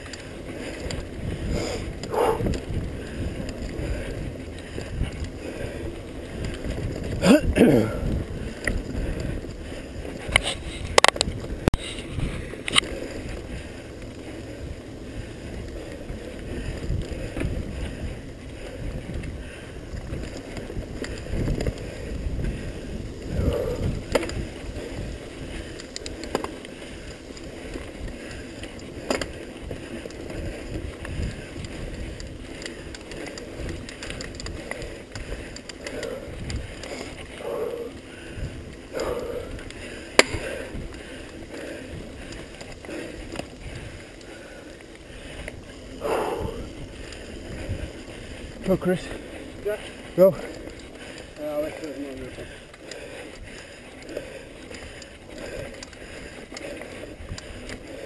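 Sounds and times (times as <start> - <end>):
wind on microphone: 0.0 - 44.6, 45.2 - 51.0
bike clicks and rattles: 0.0 - 58.0
tyres rumbling over dirt trail: 0.0 - 58.0.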